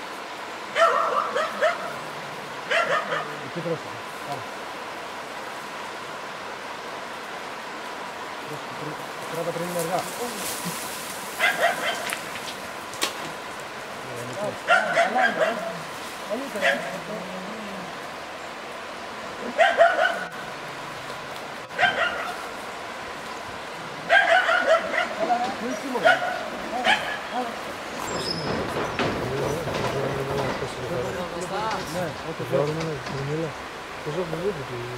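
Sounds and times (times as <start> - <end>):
small dog yelping and barking: 0.7 - 2.1, 2.7 - 3.4, 11.4 - 12.2, 14.6 - 15.8, 19.4 - 20.4, 21.7 - 22.5, 24.0 - 25.3, 25.9 - 27.4.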